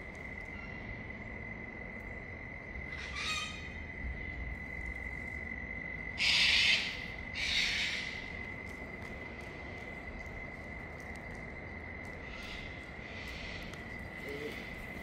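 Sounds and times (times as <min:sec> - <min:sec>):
high-pitched insect trill: 0:00.0 - 0:15.0.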